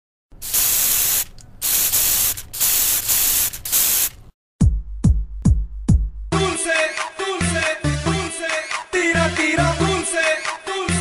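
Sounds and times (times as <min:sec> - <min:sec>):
spray can hissing: 0:00.4 - 0:04.3.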